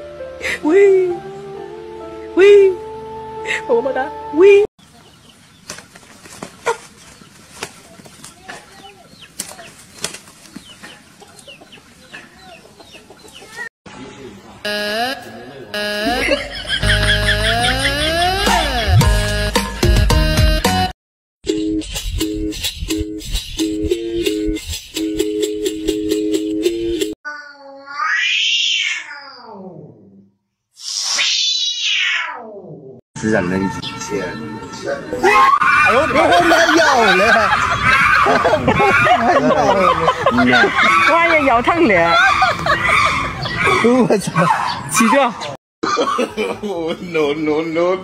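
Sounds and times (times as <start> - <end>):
loud held electronic tone: 14.7 - 19.5
cat yowling: 27.8 - 29.9, 31.2 - 32.7.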